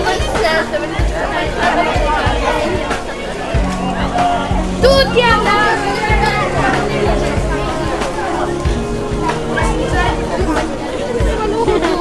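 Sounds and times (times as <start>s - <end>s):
young people chattering: 0.0s - 12.0s.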